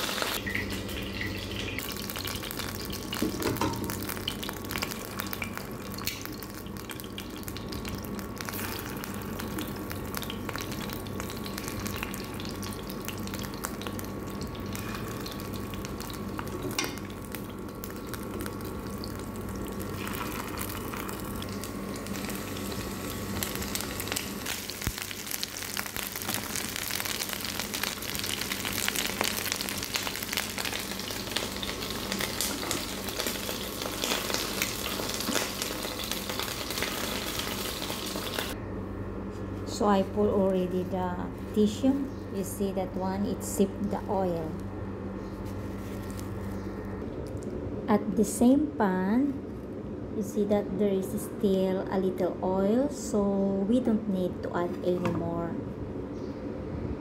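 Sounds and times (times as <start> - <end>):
chicken sizzling in oil: 0.0 - 38.6
faint steady hum: 0.0 - 57.0.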